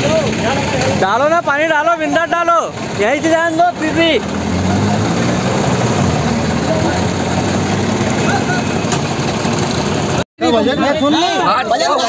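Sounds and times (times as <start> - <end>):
tractor diesel engine running: 0.0 - 10.6.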